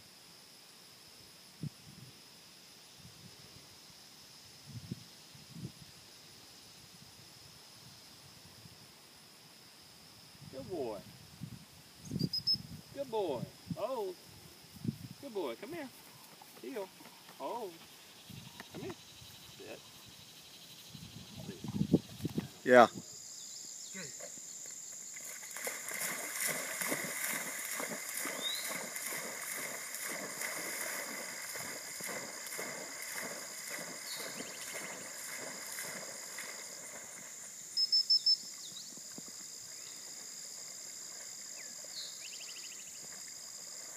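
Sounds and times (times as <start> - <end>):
short insect chirps: 0.0 - 43.9
dog paddling splashes: 25.1 - 37.5.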